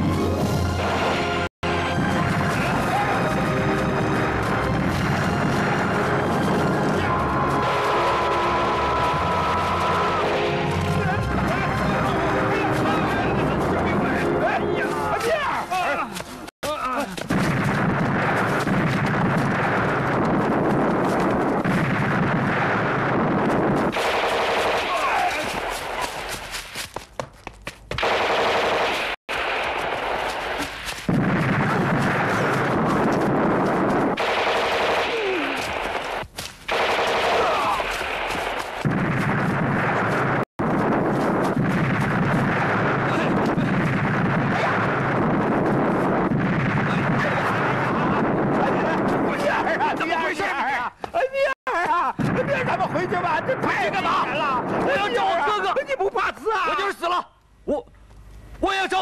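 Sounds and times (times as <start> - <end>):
men shouting: 6.8 - 16.2
machine-gun fire: 17.3 - 26.3, 28.0 - 49.3.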